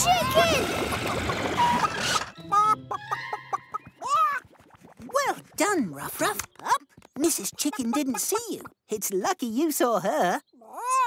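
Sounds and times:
hen clucking: 6.4s - 8.8s.

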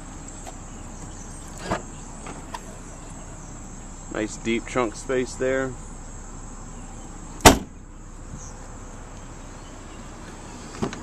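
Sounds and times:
car trunk lid thumping shut: 7.4s - 7.8s.

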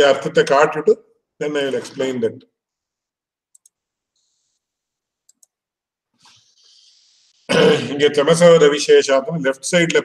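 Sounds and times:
faint clicks: 3.5s - 3.8s, 5.2s - 5.6s.

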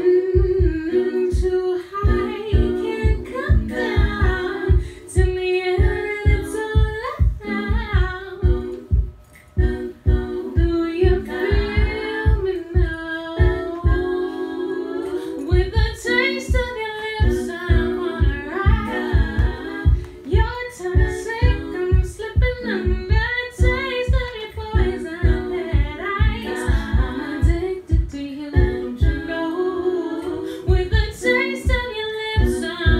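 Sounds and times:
steady low beat: 0.0s - 29.6s, 30.2s - 32.9s
held vocal harmonies: 0.0s - 32.9s
woman singing a cappella: 0.0s - 32.9s.

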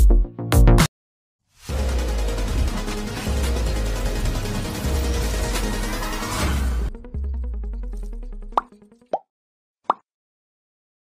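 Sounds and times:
low drone background music: 1.7s - 9.1s
pop sound effects: 8.6s - 9.3s.

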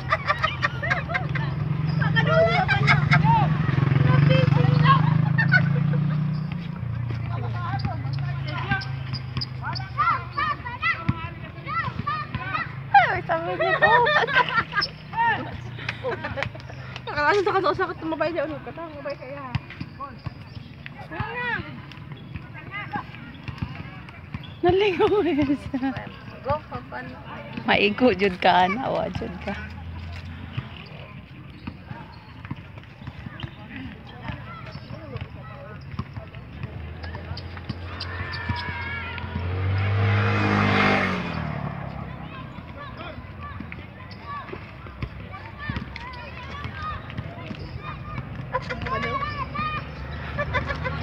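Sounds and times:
distant voices of players: 0.0s - 51.0s
vehicle driving past: 0.8s - 10.4s, 36.5s - 43.5s
basketballs bouncing on hard court: 17.3s - 26.7s, 30.4s - 39.4s.

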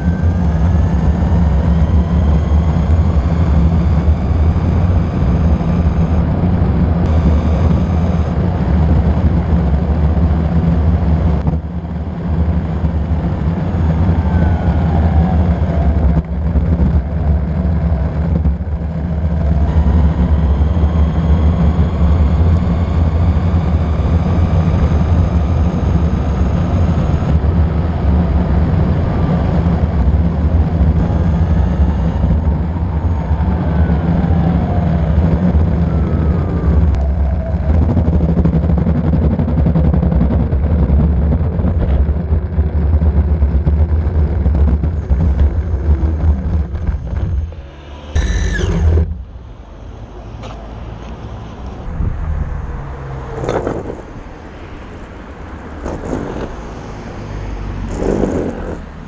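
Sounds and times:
electric motor whine: 0.0s - 11.2s, 43.4s - 59.0s
skateboard wheels rumbling on asphalt: 0.0s - 59.0s
short falling squeal: 45.6s - 54.6s.

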